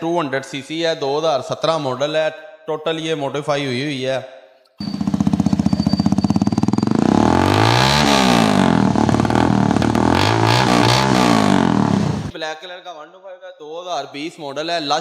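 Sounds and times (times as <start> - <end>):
motorcycle engine revving: 4.8 - 12.3.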